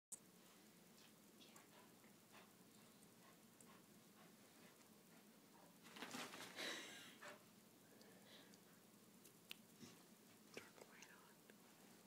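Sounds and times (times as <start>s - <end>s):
faint whispering: 1.0s - 2.0s, 10.5s - 11.6s
soft ticks: 10.5s - 11.6s.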